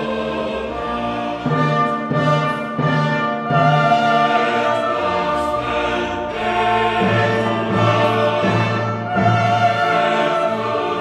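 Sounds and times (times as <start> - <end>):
choir singing: 0.0 - 11.0
orchestral accompaniment: 0.0 - 11.0.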